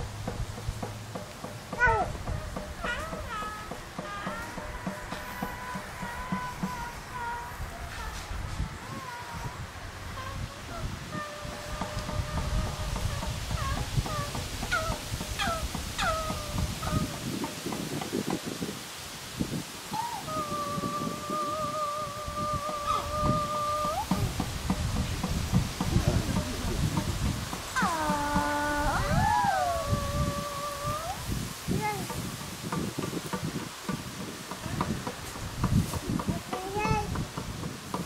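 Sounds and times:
low rumbling noise: 0.0s - 17.4s, 19.4s - 33.0s
high wailing sliding tones: 19.9s - 24.4s, 27.8s - 31.3s.

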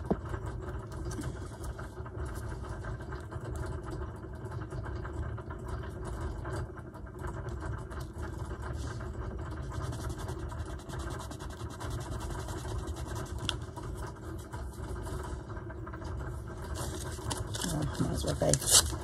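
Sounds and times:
low machine rumble: 0.0s - 19.0s
glue stick rubbing on paper: 9.6s - 15.2s.

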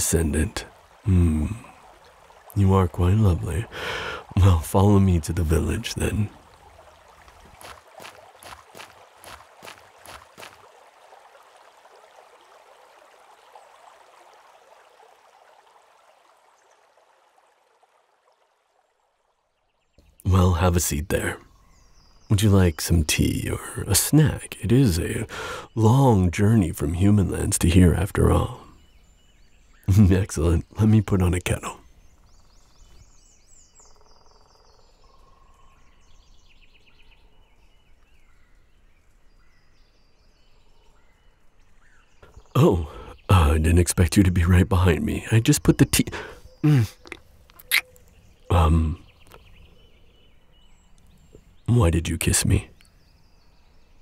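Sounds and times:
low steady noise: 0.0s - 7.5s
small birds chirping and trilling: 0.0s - 11.7s, 19.6s - 54.0s
running water: 0.0s - 33.3s, 41.4s - 49.7s.

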